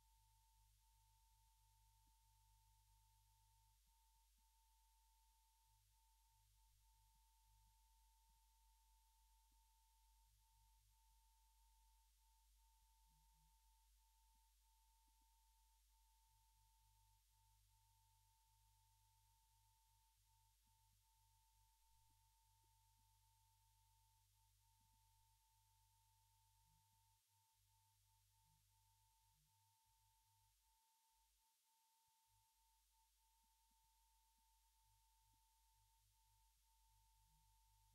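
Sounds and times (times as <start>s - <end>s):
faint low hum: 0.0s - 37.9s.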